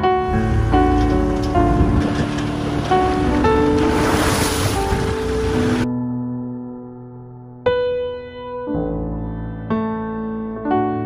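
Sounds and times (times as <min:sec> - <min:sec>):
slow keyboard music: 0:00.0 - 0:11.0.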